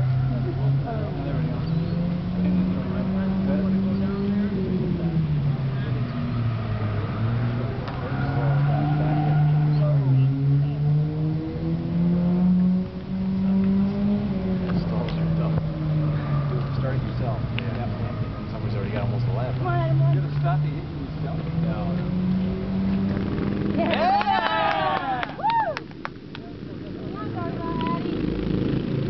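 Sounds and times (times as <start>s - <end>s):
go-kart engines revving: 0.0s - 29.0s.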